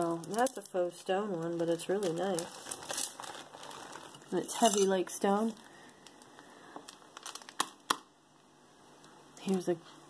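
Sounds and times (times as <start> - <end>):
jewelry clicks and rustles: 0.0 - 7.8.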